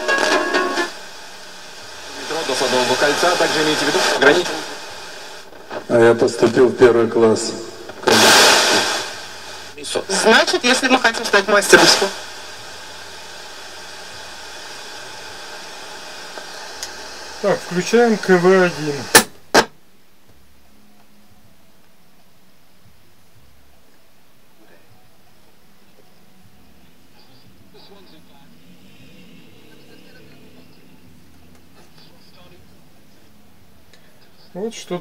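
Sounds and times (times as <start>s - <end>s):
radio hiss between stations: 0.0s - 19.8s, 21.9s - 35.0s.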